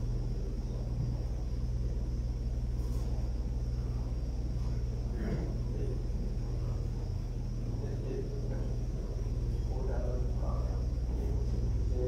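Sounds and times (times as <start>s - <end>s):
steady low hum with hiss: 0.0s - 12.0s.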